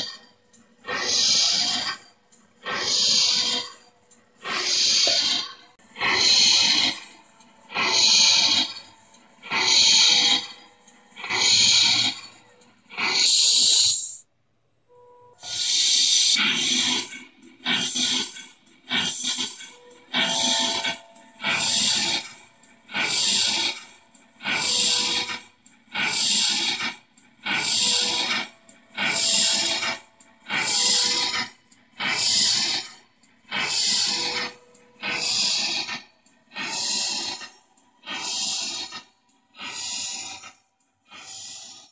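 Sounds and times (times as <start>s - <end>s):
steam engine exhaust chuffs: 0.0s - 14.3s, 14.9s - 41.9s.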